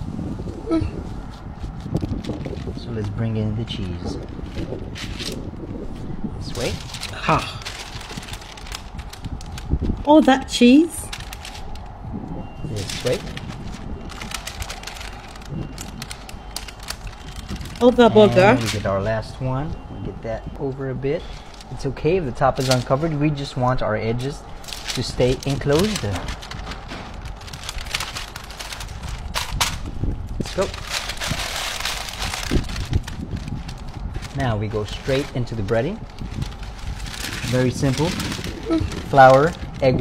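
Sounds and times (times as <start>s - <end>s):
parchment paper crinkling: 0.5s - 19.7s, 20.5s - 40.0s.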